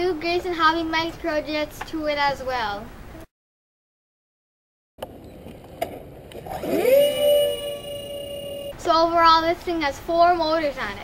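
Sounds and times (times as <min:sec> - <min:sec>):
electric motor whine: 0:06.4 - 0:08.8.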